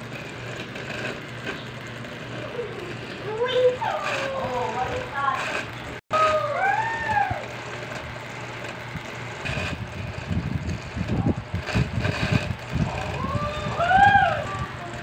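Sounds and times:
rising-and-falling call: 6.1 - 7.8.

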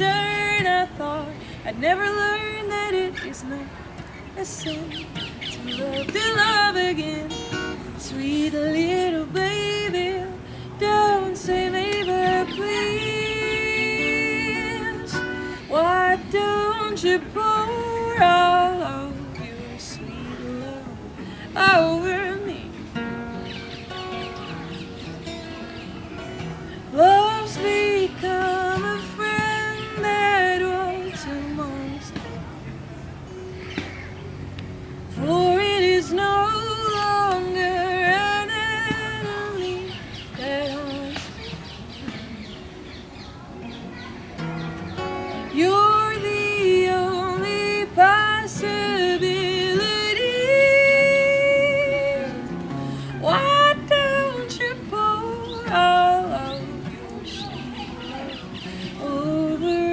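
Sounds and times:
woman singing wordless melody: 0.0 - 33.4, 34.4 - 43.2, 45.0 - 59.9
acoustic guitar playing chords: 0.0 - 59.9
small birds chirping: 2.3 - 7.0, 22.2 - 31.9, 36.2 - 53.0, 54.0 - 59.8.

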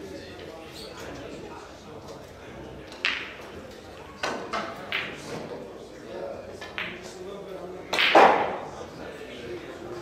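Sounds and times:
pool balls clattering: 2.9 - 5.7
cue striking ball: 7.9 - 8.7.

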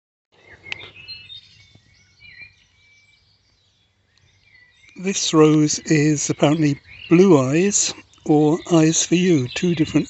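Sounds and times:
songbirds chirping: 0.3 - 10.0.

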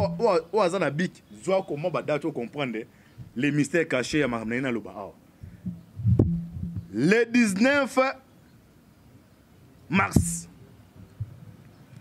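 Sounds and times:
man speaking: 0.0 - 5.2, 6.9 - 8.2, 9.9 - 10.5
soft low thump: 5.4 - 6.9.

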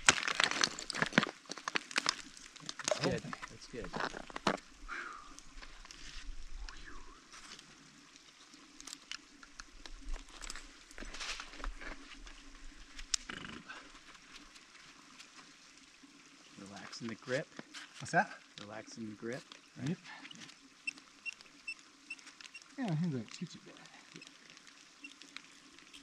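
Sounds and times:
climber breathing and grunting: 4.9 - 5.4.

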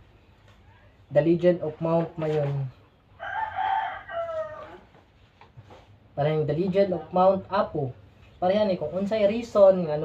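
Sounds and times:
rooster crowing: 3.2 - 5.0.

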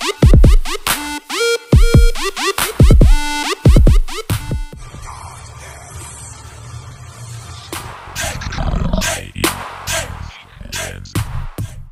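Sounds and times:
low growl-like rumble: 8.2 - 9.4.

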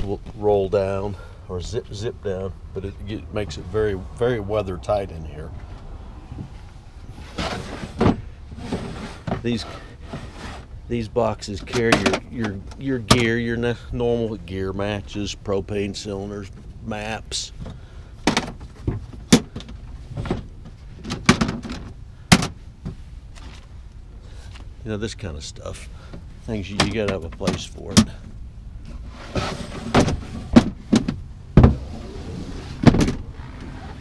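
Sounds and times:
plastic boxes clattering: 11.6 - 13.3, 18.3 - 22.6, 29.4 - 31.8.

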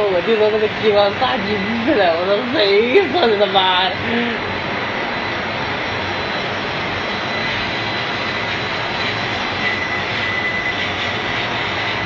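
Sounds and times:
machine rushing noise: 0.0 - 12.0.

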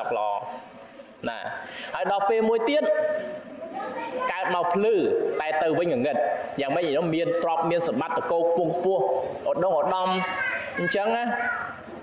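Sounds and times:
man preaching: 0.0 - 0.6, 1.2 - 3.2, 4.3 - 11.5.

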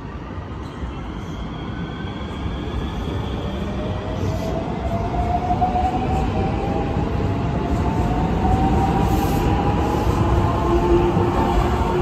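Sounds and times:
electric train running past: 1.0 - 12.0.

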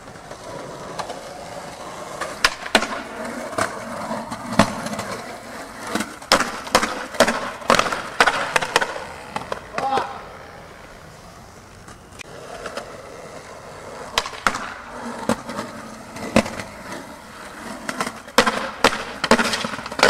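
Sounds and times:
skateboard wheels rolling on concrete: 0.0 - 20.0
skateboard clacking on ledge: 2.1 - 3.7, 5.9 - 10.2, 14.1 - 15.5, 17.8 - 20.0.

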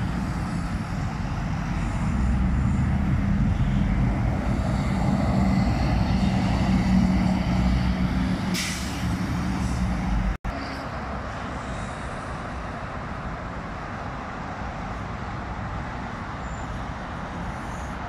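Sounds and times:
bus engine drone: 0.0 - 18.0
highway traffic: 0.0 - 18.0
air brake hiss: 8.5 - 9.8.

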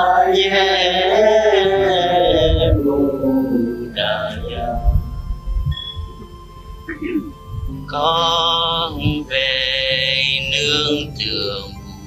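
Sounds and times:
person chanting: 0.0 - 5.5, 6.9 - 12.0.

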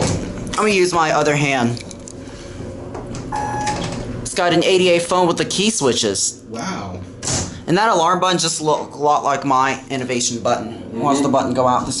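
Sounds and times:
short electronic beep: 3.3 - 3.8.

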